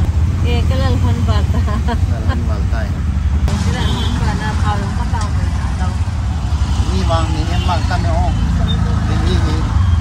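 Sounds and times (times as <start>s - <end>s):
auto-rickshaw engine droning: 0.0s - 10.0s.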